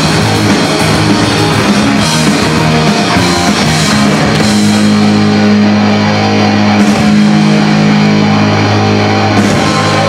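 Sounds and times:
distorted electric guitar chord: 0:00.0 - 0:10.0
punk rock band playing: 0:00.0 - 0:10.0.

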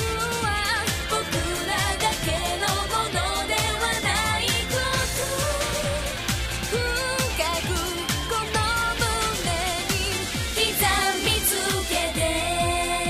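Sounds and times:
pop song with sung vocal: 0:00.0 - 0:13.0
steady drum beat: 0:00.0 - 0:13.0.

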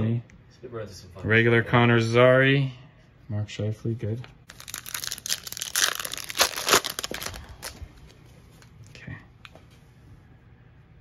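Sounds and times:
wrapper torn open and crinkled: 0:04.5 - 0:07.8.

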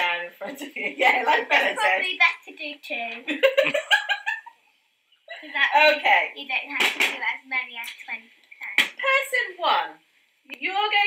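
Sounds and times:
people talking: 0:00.0 - 0:04.0, 0:05.3 - 0:11.0
sharp slaps: 0:06.8 - 0:09.0.

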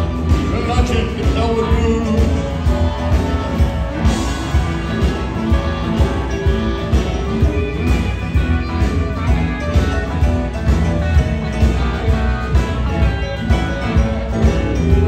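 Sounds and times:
blues band playing: 0:00.0 - 0:15.0.

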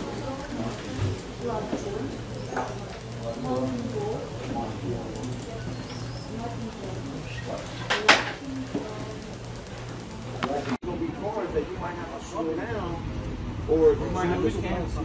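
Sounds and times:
steady low hum: 0:00.0 - 0:10.8
indistinct voices talking quietly: 0:00.0 - 0:12.0.

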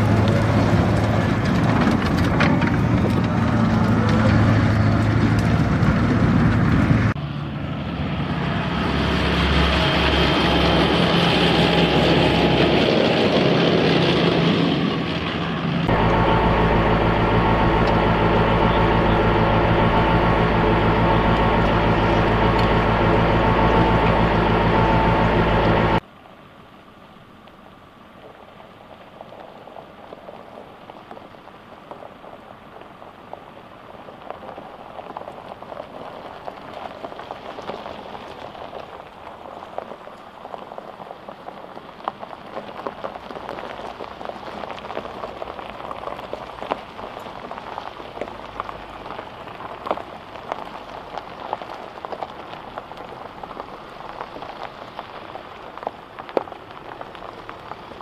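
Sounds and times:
diesel engine running: 0:00.0 - 0:26.0
low background rumble: 0:00.0 - 0:26.0.

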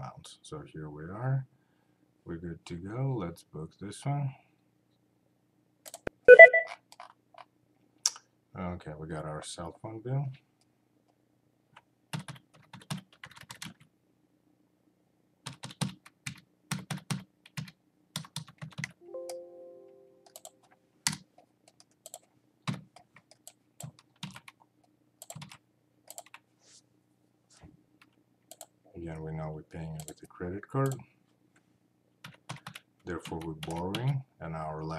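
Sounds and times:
pitched tone: 0:06.2 - 0:06.8
computer keyboard typing: 0:12.1 - 0:13.9, 0:15.4 - 0:19.0, 0:20.2 - 0:24.6, 0:25.2 - 0:26.4, 0:30.0 - 0:30.2, 0:32.2 - 0:34.1.

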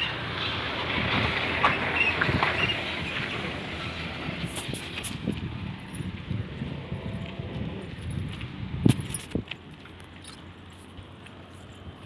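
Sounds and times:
car engine and tyre noise: 0:00.0 - 0:12.0.

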